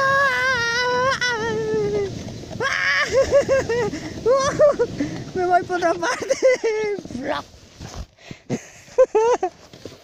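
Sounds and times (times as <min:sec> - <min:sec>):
child's high-pitched cry: 0:00.0 - 0:03.2
plastic sled sliding on snow: 0:00.0 - 0:10.0.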